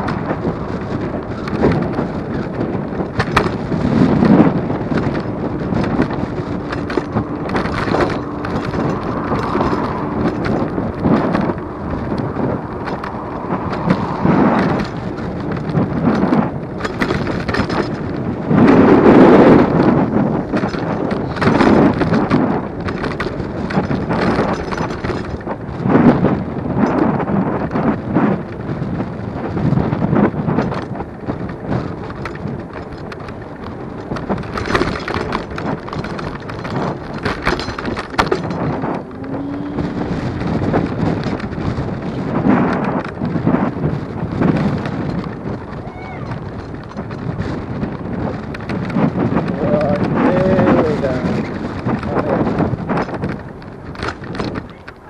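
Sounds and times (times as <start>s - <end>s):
knocks and thumps from road bumps: 0.0s - 55.0s
scooter road rumble: 0.0s - 55.0s
wind buffeting microphone: 0.0s - 55.0s.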